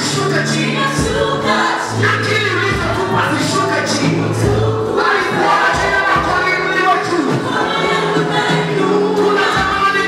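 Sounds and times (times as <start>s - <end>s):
voices singing along: 0.0s - 10.0s
man singing into microphone: 9.1s - 10.0s.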